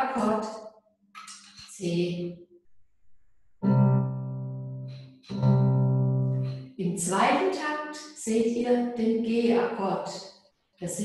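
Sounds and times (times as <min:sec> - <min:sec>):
piano chord ringing: 0:03.6 - 0:06.6.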